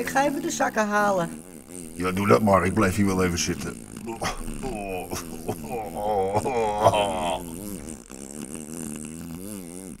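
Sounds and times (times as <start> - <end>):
buzzing fart sound effect: 0.0 - 10.0.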